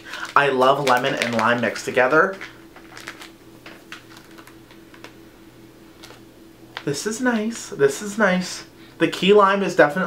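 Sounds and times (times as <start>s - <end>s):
plastic pack clicking and crackling: 0.0s - 5.2s, 6.0s - 6.9s.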